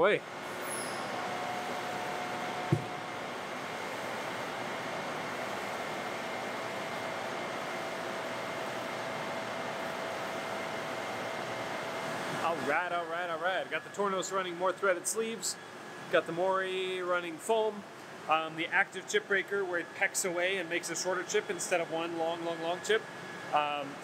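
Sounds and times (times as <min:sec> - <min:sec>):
short sharp knock: 0:02.7 - 0:03.0
machine-shop equipment hissing: 0:12.0 - 0:24.0.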